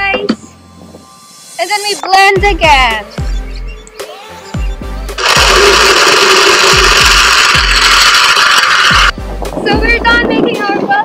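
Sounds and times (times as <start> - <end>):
blender crushing ice: 5.2 - 9.1.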